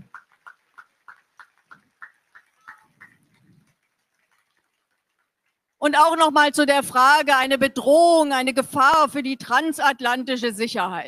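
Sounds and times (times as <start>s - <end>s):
audience clapping: 0.0s - 5.8s.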